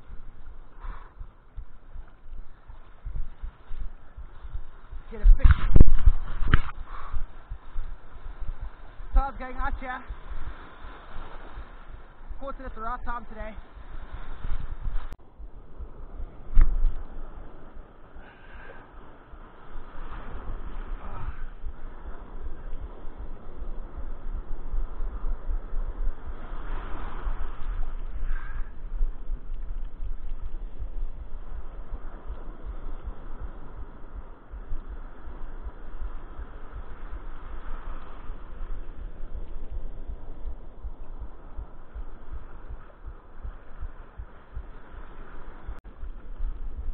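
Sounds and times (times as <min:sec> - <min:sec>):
surf and water churning: 0:00.0 - 0:46.9.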